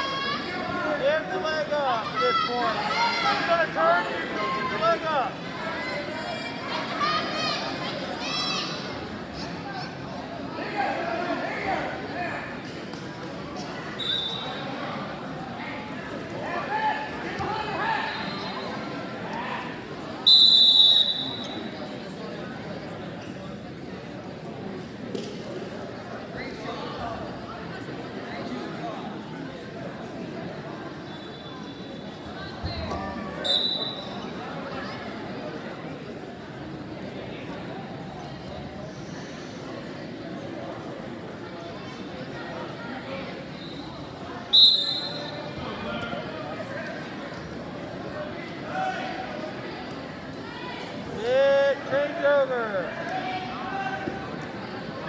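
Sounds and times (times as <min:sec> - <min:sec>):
spectators murmuring: 0:00.0 - 0:55.0
referee whistle blast: 0:20.3 - 0:21.5, 0:44.5 - 0:45.4.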